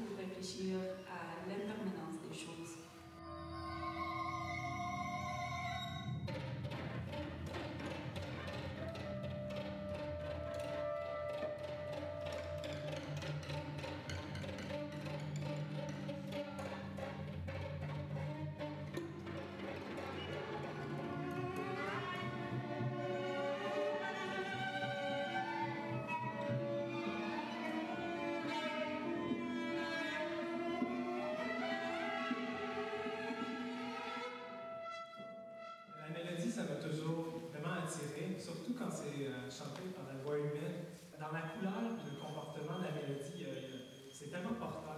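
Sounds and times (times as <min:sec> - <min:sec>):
chamber ensemble bowed strings: 0:00.0 - 0:36.2.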